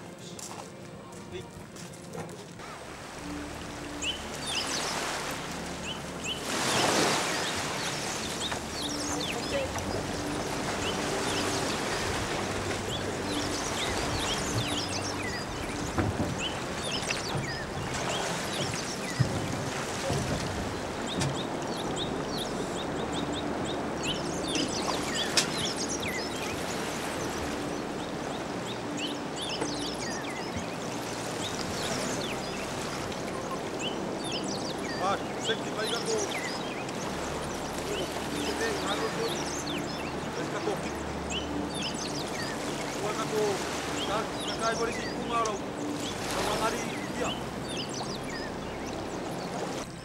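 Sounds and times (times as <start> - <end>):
shallow water splashing and trickling: 2.4 - 50.0.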